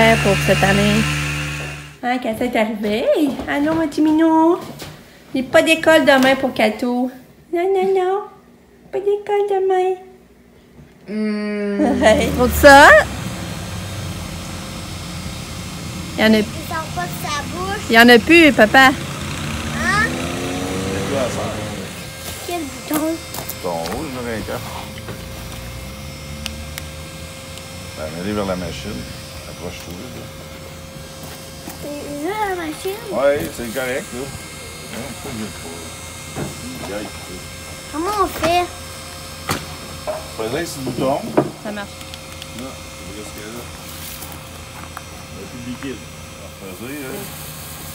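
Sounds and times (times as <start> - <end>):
electric blower fans humming: 0.0 - 47.9.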